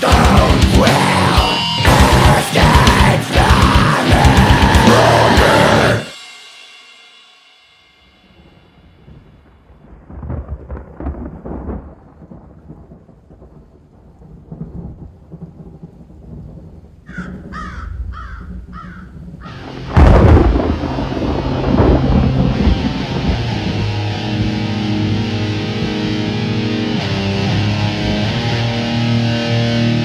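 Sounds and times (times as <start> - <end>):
thunder rumbling: 0.0 - 6.0, 8.9 - 26.2
steady rain: 9.0 - 29.6
loud thunderclap: 9.8 - 24.6
bird calling: 17.1 - 19.6.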